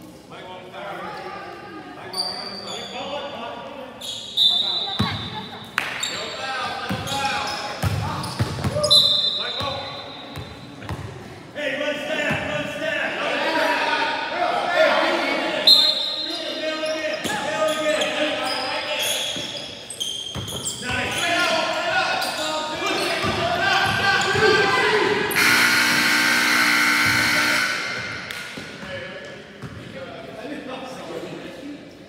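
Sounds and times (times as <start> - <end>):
players and spectators shouting: 20.9 - 28.3
scoreboard buzzer: 25.3 - 28.4.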